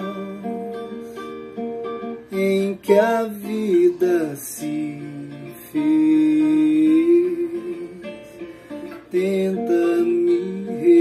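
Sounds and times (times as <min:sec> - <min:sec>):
man singing long note: 0:09.1 - 0:11.0.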